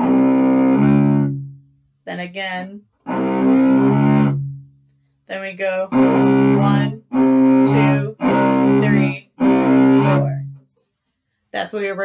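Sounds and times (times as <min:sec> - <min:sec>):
cello bowed low note: 0:00.0 - 0:01.7, 0:03.0 - 0:04.8, 0:05.8 - 0:10.6.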